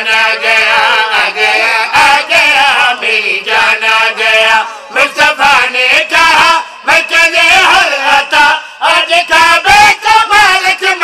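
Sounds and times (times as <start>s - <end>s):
men chanting into a microphone: 0.0s - 11.0s.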